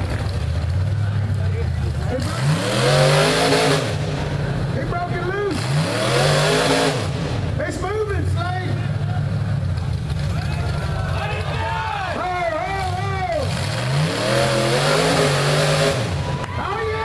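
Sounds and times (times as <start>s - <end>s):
buggy engine running: 0.0s - 17.0s
spectators shouting: 10.2s - 17.0s.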